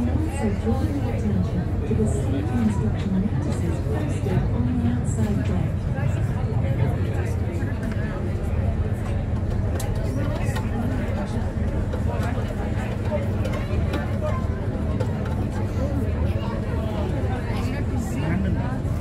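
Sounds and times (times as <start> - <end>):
boat engine drone: 0.0 - 19.0
people talking: 0.0 - 19.0.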